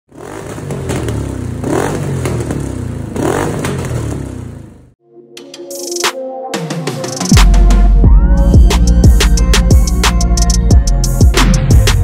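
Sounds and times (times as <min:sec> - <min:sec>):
motorcycle engine revving: 0:00.1 - 0:05.0
exhaust pops: 0:00.4 - 0:04.5.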